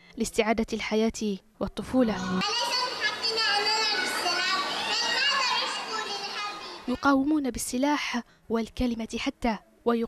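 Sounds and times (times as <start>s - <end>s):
girl speaking into microphone: 0.2s - 10.0s
children's voices: 1.8s - 7.2s.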